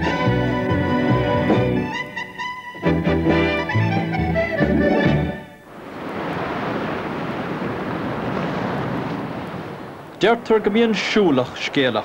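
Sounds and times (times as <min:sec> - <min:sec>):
waves washing onto stony beach: 0:05.7 - 0:12.0.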